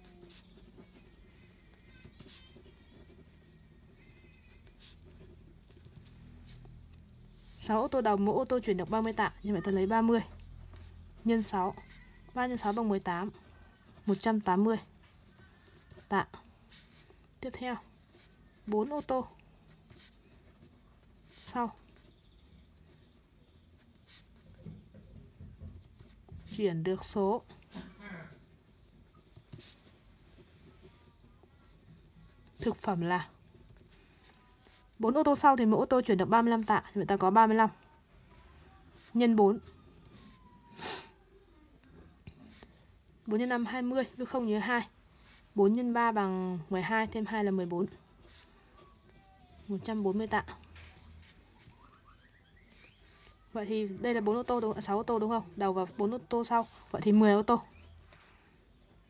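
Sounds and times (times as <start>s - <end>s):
pen scratching on paper: 0.0s - 40.5s.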